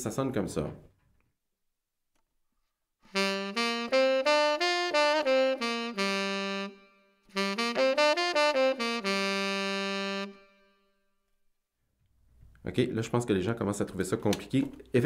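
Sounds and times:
tenor saxophone playing scale: 3.1s - 10.9s.

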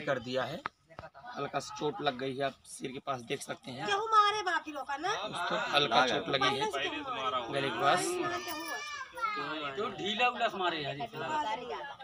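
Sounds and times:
small child crying: 8.0s - 9.8s.

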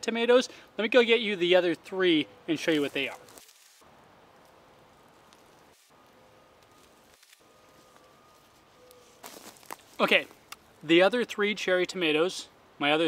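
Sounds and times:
plant leaves rustling: 2.5s - 10.9s.

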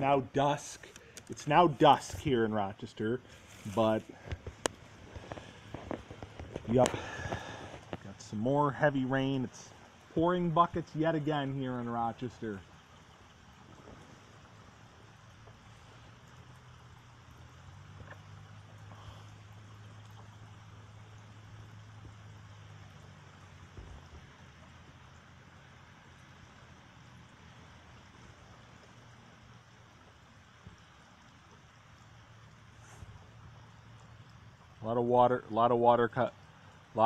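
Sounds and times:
heavy rain hiss: 0.0s - 37.0s
low steady hum: 0.0s - 37.0s.

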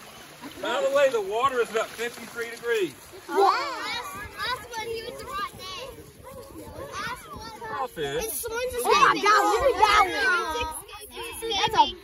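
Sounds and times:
children chattering and calling out: 3.0s - 12.0s.

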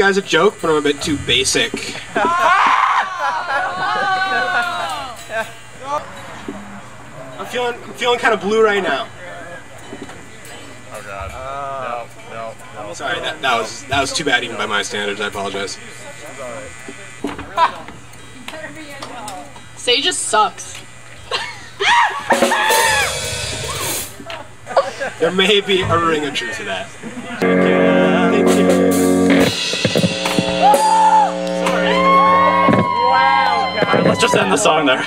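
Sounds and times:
faint indistinct voices: 3.3s - 21.3s
low bass note: 27.4s - 34.2s.

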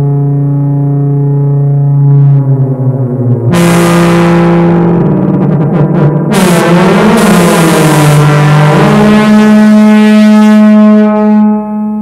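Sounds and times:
synthesizer droning oscillator tone: 0.0s - 12.0s.

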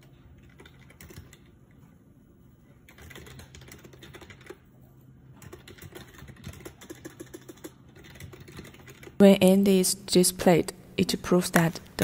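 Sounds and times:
typing on computer keyboard: 0.1s - 1.7s, 2.8s - 4.7s, 5.3s - 9.2s.

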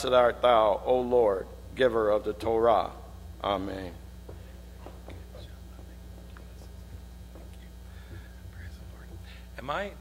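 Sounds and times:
low electrical hum: 0.0s - 10.0s
faint whispering voices: 5.1s - 9.6s.

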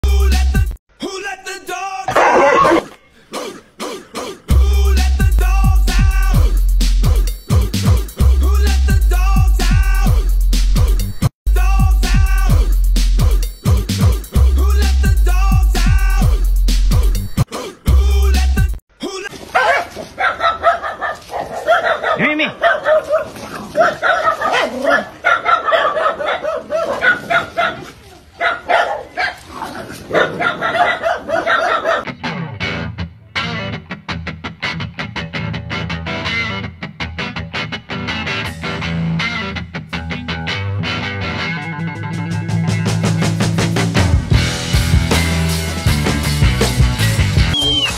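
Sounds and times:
animal harsh cry: 2.1s - 3.0s
dogs barking rapidly: 2.1s - 3.0s, 19.5s - 32.1s.

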